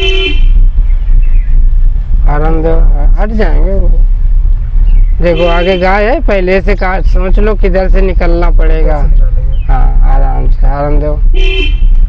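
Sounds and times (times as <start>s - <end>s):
car horn beep: 0.0s - 0.7s, 5.2s - 6.1s, 11.3s - 12.0s
car interior rumble: 0.0s - 12.0s.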